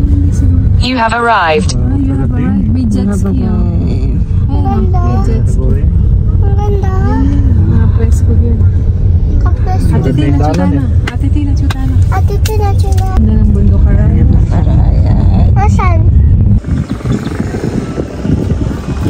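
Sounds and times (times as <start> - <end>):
people talking: 0.0 - 16.1
car cabin road rumble: 0.0 - 19.0.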